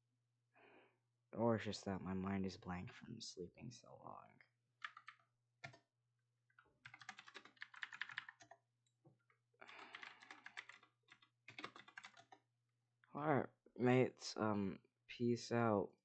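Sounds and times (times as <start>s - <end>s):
typing on keyboard: 4.8s - 5.8s, 6.8s - 8.6s, 9.6s - 12.4s.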